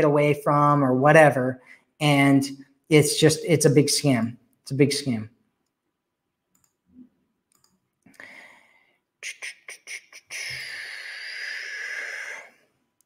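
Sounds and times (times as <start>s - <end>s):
man breathing: 8.1s - 12.8s.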